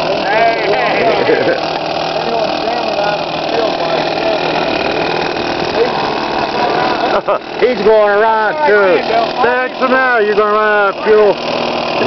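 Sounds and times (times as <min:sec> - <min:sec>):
model airplane engine running: 0:00.0 - 0:12.0.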